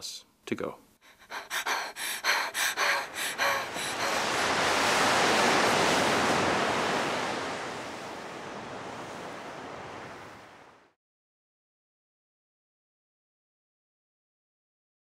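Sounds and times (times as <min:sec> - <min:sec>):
quick gasping breaths: 0:01.0 - 0:05.9
sea wave rushing: 0:01.2 - 0:11.0.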